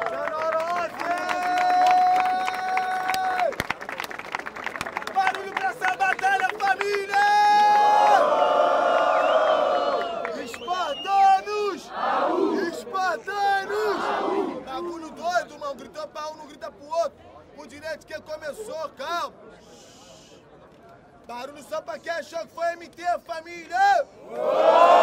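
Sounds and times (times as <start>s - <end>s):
crowd cheering and clapping: 0.0s - 11.0s, 24.3s - 25.0s.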